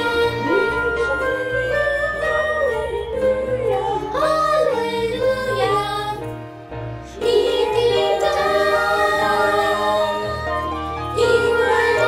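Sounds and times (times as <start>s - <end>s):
children's choir singing: 0.0s - 6.2s, 7.2s - 12.0s.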